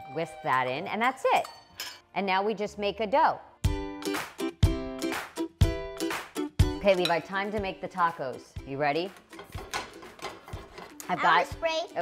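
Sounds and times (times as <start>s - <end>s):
kitchenware rustling: 6.8s - 7.6s, 8.9s - 11.4s.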